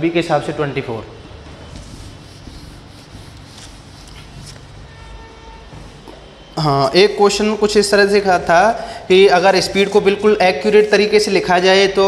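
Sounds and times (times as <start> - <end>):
eraser wiping whiteboard: 1.6 - 6.1.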